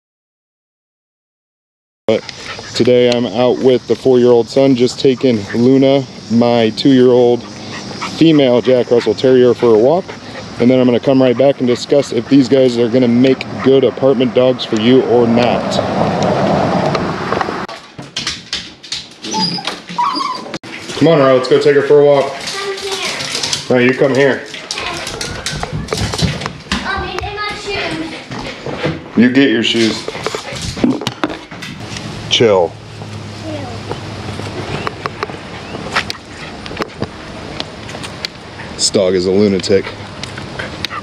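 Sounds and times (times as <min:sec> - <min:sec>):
sharp clicks and knocks: 0:16.2 - 0:20.0
dog whimpering: 0:19.3 - 0:20.6.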